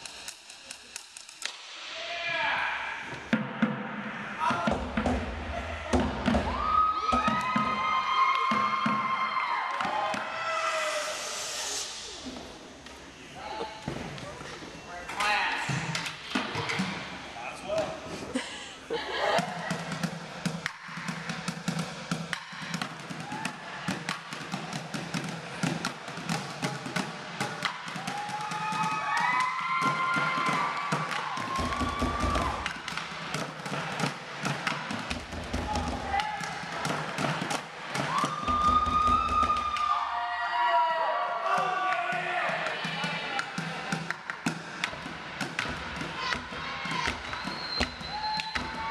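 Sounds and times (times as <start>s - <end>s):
drumsticks beating on buckets: 19.4s - 39.9s, 41.5s - 48.9s.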